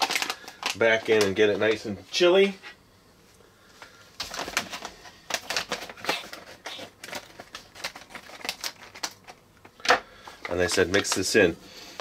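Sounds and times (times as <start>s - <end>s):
packet crinkling and clicking: 0.0s - 1.9s, 4.2s - 12.0s.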